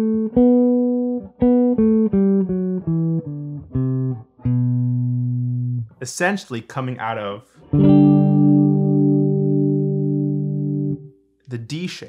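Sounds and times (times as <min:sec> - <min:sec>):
electric guitar chord ringing: 0:00.0 - 0:05.8, 0:07.6 - 0:11.1.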